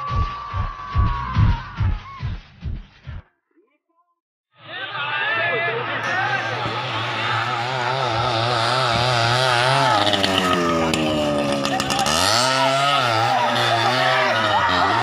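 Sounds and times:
motorcycle engine revving: 6.0 - 15.0.

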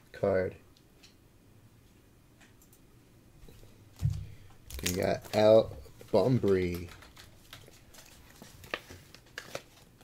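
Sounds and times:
plastic rustling: 3.6 - 10.0.

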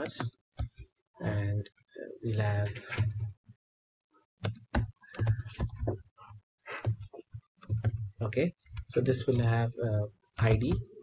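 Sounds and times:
typing on computer keyboard: 4.4 - 5.9, 10.4 - 10.9.

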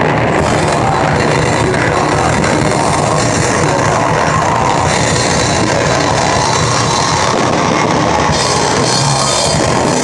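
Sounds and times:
drums: 0.0 - 10.0
electric guitars: 0.0 - 10.0.

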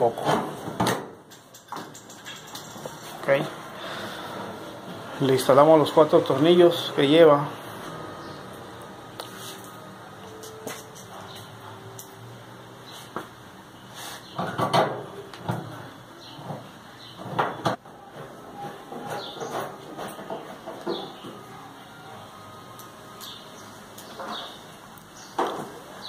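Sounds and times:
screwdriver and sheet metal clatter: 0.2 - 3.2, 10.3 - 12.2.

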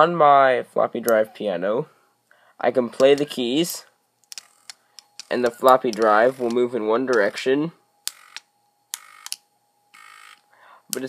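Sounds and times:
floppy drive motor buzzing notes: 4.4 - 10.5.

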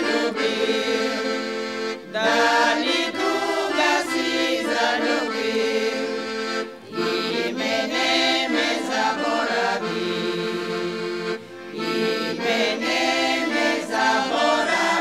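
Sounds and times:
accordion: 0.0 - 15.0
women singing together: 0.0 - 15.0.

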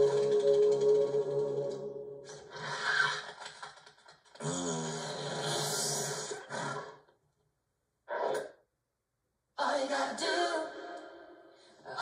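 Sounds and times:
film music: 0.0 - 2.6
rasping hissing sound effects: 5.3 - 6.8.

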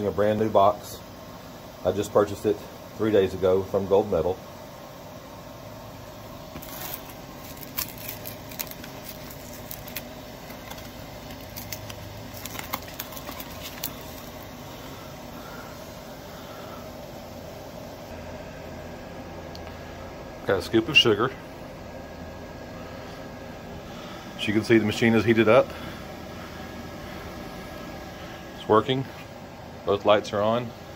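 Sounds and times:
background hum: 0.0 - 30.9.

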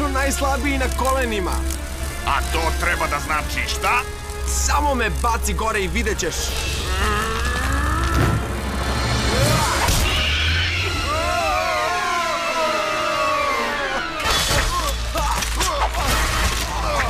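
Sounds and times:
cartoon action music: 6.4 - 17.0
crash and impact effects: 7.5 - 11.2.

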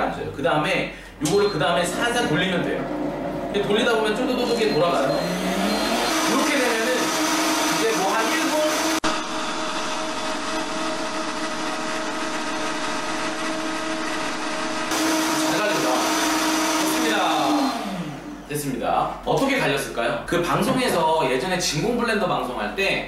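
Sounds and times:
blender motor whining: 1.8 - 18.6.

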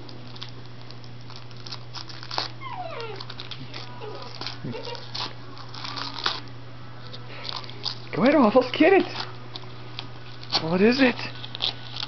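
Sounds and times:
tissue paper crinkling: 0.0 - 12.0
dog whining: 2.4 - 6.1.

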